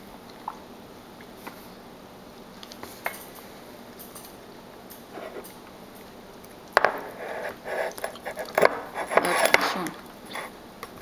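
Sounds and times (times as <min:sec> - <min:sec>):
person speaking: 0:09.0 - 0:10.1.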